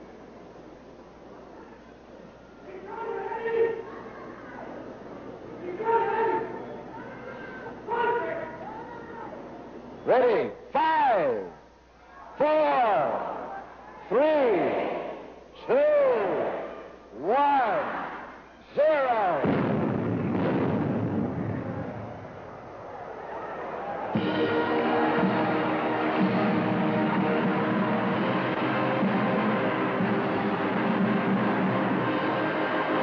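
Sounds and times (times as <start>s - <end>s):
cannon blast: 19.4s - 22.4s
circus band playing: 24.0s - 33.0s.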